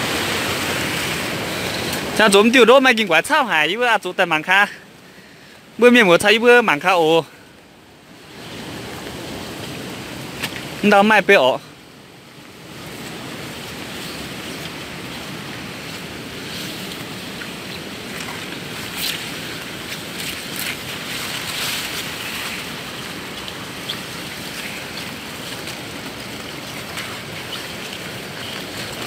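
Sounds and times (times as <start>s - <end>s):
steady rushing noise: 0.0s - 29.0s
rustling and crunching through plants: 12.3s - 29.0s.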